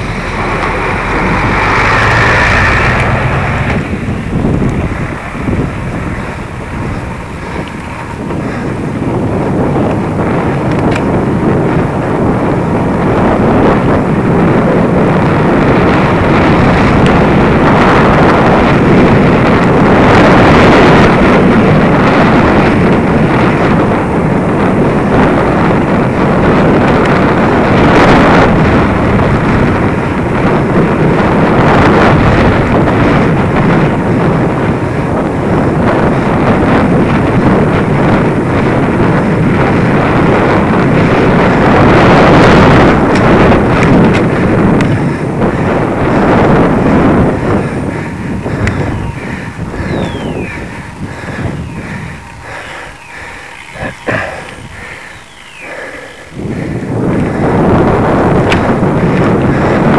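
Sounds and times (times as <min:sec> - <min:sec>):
tyre and road rumble: 0:00.0 - 0:59.9
wind rushing over microphone: 0:00.0 - 0:59.9.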